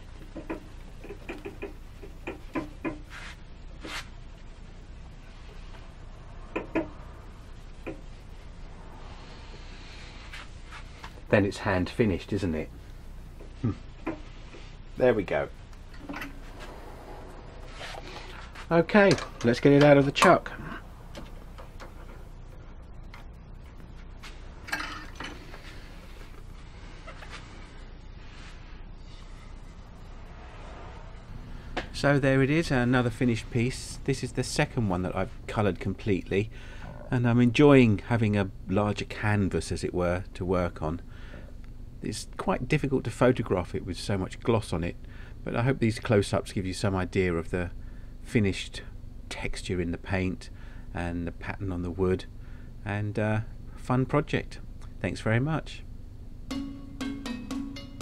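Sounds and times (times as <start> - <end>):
steady low hum: 0.0 - 58.0
light clicks and knocks: 0.2 - 3.1
cloth rubbing on wood: 3.0 - 4.1.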